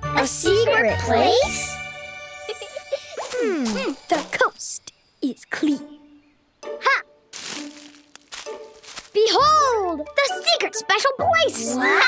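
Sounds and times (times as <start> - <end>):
soft background music: 0.0 - 12.0
rustling swishes of bush: 7.4 - 9.3.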